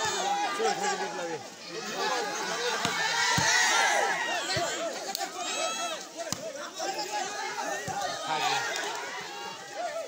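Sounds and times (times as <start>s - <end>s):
spectators shouting: 0.0s - 10.0s.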